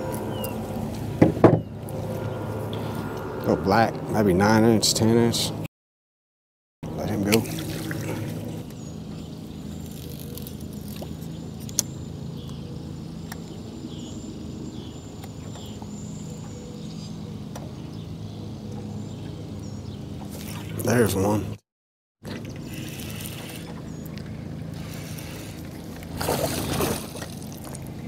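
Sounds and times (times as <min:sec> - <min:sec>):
electric trolling motor humming: 0:00.0 - 0:05.5, 0:22.2 - 0:28.0.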